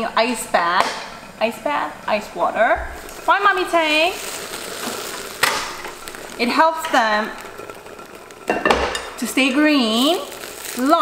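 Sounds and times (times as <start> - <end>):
steady hiss: 0.0 - 11.0
glass lid clinking: 8.5 - 9.2.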